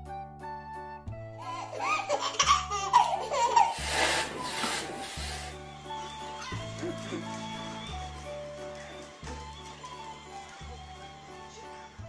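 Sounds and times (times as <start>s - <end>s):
background music: 0.0s - 12.0s
baby laughing: 1.4s - 5.2s.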